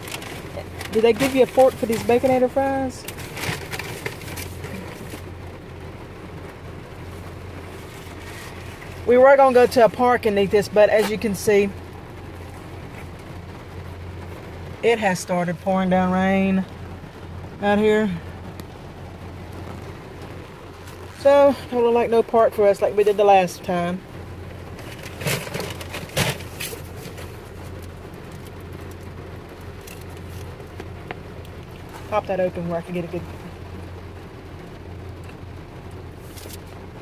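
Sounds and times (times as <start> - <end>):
foil wrapper crinkling: 0.0 - 5.3, 24.6 - 29.1
heavy rain on car roof: 0.0 - 37.0
low steady hum: 0.0 - 37.0
person speaking: 0.5 - 3.1, 9.0 - 11.8, 14.8 - 16.8, 17.6 - 18.4, 20.8 - 24.0, 32.1 - 33.5.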